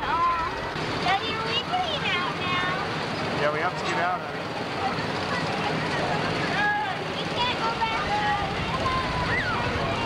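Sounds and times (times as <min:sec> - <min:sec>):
indistinct voices talking: 0:00.0 - 0:10.0
steady rushing noise: 0:00.0 - 0:10.0.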